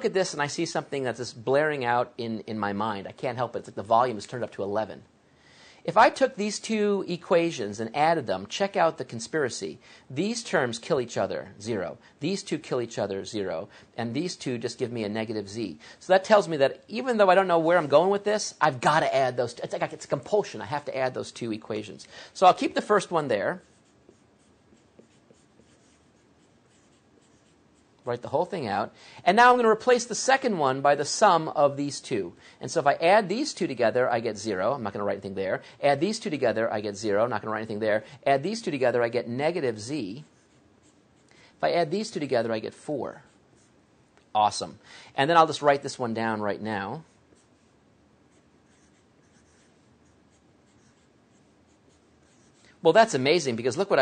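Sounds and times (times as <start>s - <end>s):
marker scratching on surface: 22.8s - 28.0s, 40.2s - 41.4s, 43.2s - 43.8s, 47.0s - 52.7s.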